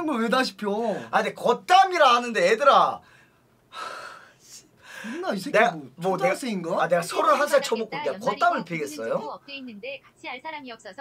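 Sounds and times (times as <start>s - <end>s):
person breathing out: 3.1s - 5.2s.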